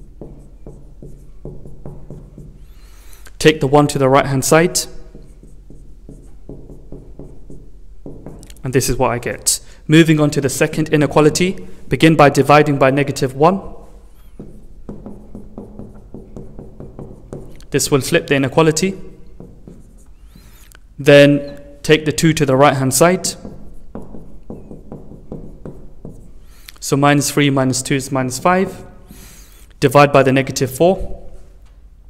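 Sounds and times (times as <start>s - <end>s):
marker pen on whiteboard: 0.0s - 31.9s
marker squeaks: 0.1s - 3.4s, 13.8s - 21.8s, 23.2s - 26.8s, 29.1s - 29.8s.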